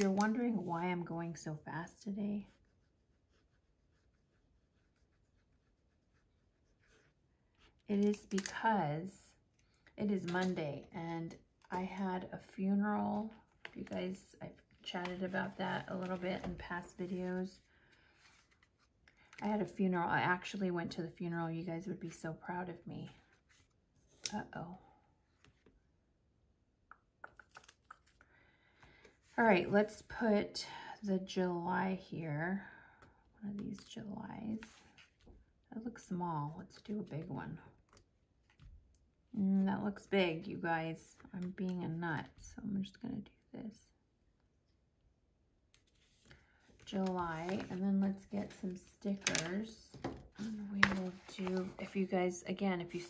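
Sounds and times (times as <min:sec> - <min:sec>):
marker scratching on paper: 0:02.4 - 0:07.2
paper sticker book handled: 0:06.9 - 0:08.7, 0:13.0 - 0:17.4, 0:18.2 - 0:19.4, 0:45.8 - 0:52.3.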